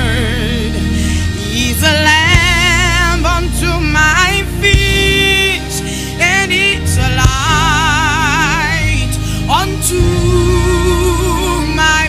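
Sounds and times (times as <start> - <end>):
drums and bass: 0.0 - 5.6, 6.7 - 12.0.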